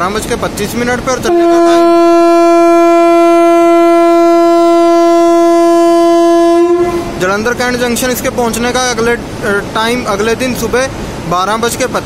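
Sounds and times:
train horn long blast: 1.2s - 7.2s.

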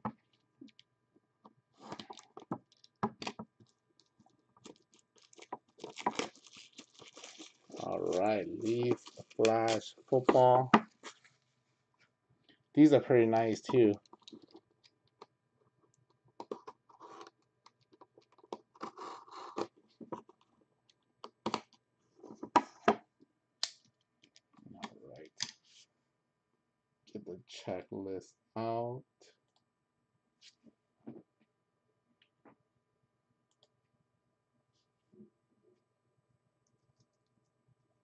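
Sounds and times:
plastic wrap crinkling: 1.8s - 3.0s, 3.6s - 10.4s.

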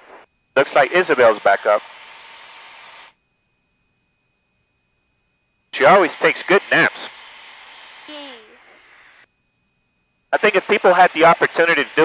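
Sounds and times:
headset static hiss: 0.0s - 3.2s, 5.8s - 9.3s, 10.3s - 12.0s.

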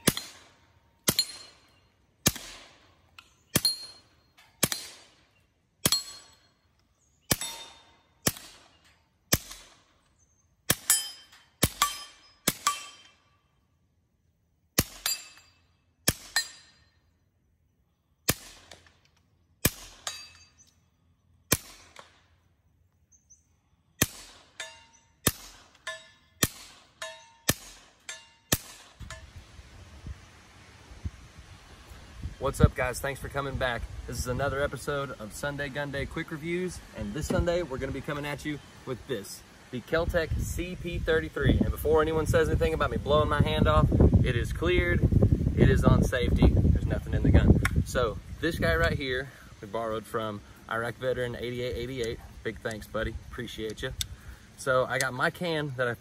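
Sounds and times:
suppressed pistol shots: 0.0s - 1.6s, 2.2s - 2.8s, 4.6s - 5.2s, 7.3s - 9.9s, 14.8s - 15.4s, 18.3s - 19.0s, 19.6s - 20.1s, 21.5s - 22.3s, 24.0s - 24.6s, 26.4s - 29.1s
steel target ringing: 1.1s - 1.8s, 3.6s - 5.0s, 5.8s - 6.5s, 10.7s - 13.4s, 24.5s - 29.3s.

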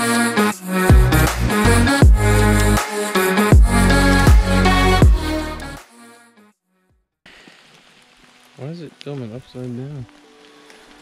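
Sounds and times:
rain falling in a forest: 7.3s - 11.0s.

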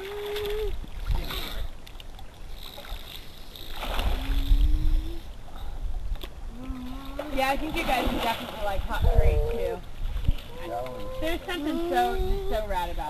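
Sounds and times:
water sloshing and splashing: 0.0s - 13.0s
wind buffeting microphone: 3.9s - 13.0s.

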